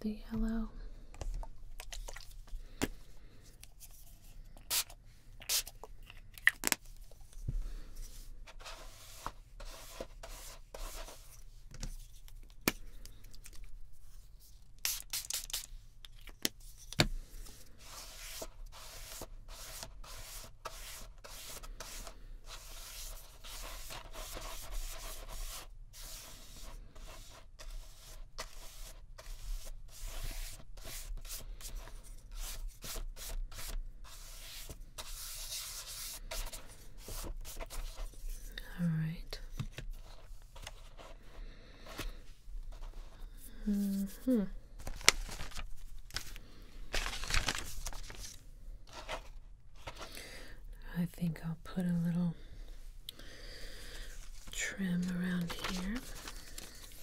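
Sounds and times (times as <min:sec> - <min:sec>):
paintbrush scratching on paper: 0:08.1 - 0:11.4, 0:17.8 - 0:38.5.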